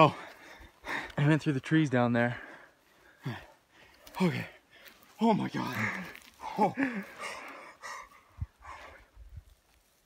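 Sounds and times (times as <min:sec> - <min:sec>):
man breathing hard: 0:00.0 - 0:01.2, 0:02.3 - 0:05.1, 0:05.8 - 0:09.3.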